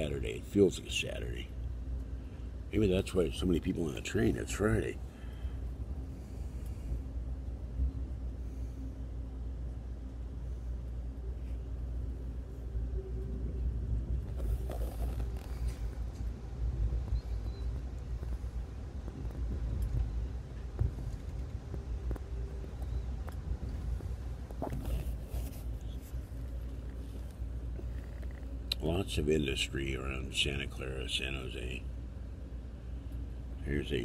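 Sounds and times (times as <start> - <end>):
train car rumble: 0.0 - 34.0.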